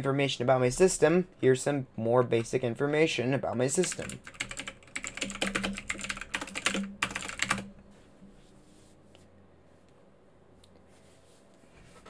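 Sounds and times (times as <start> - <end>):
typing on computer keyboard: 3.8 - 7.7.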